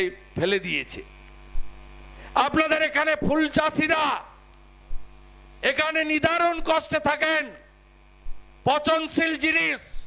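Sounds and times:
electrical mains hum: 0.0s - 10.0s
man speaking through amplification: 2.4s - 4.3s, 5.6s - 7.6s, 8.6s - 10.0s.

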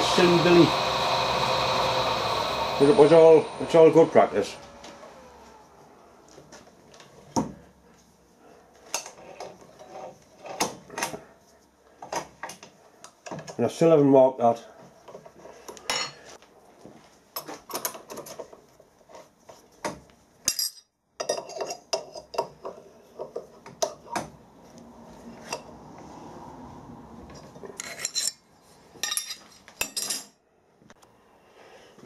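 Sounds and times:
metal tools clinking: 27.4s - 30.4s.

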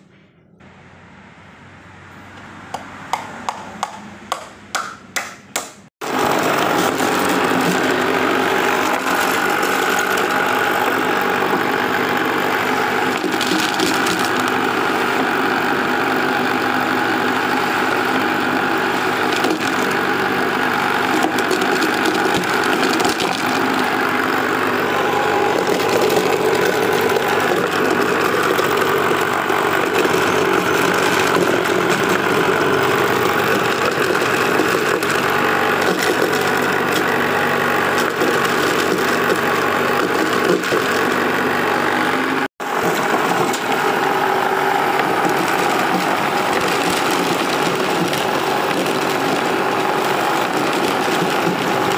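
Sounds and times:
electric motor humming: 6.0s - 51.9s
corn cobs clattering in box: 13.1s - 14.6s, 21.0s - 23.8s, 37.9s - 41.2s, 45.0s - 51.9s.

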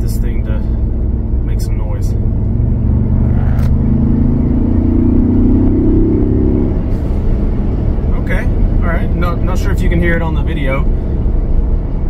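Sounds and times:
car engine accelerating: 0.0s - 12.0s
road rumble: 0.0s - 12.0s.

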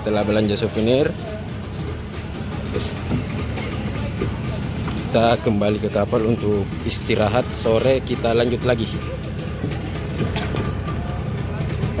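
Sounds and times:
faint voices: 0.0s - 12.0s
outboard motor idling: 0.0s - 12.0s.

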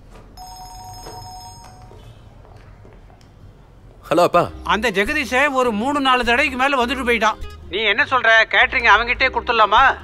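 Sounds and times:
mobile phone two-note ring tone: 0.4s - 2.0s.

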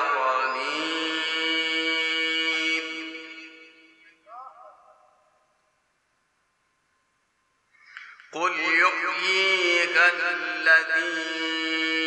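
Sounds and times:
man reciting melodically: 0.0s - 5.4s, 8.0s - 12.0s.

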